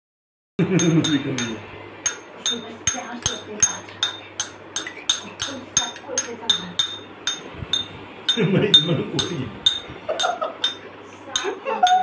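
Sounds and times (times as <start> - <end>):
metal spoon clinking on steel bowl: 0.8 - 12.0.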